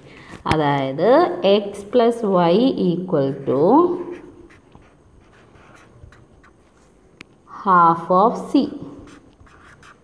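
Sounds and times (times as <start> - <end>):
marker writing on paper: 4.0 - 7.0, 8.8 - 10.0.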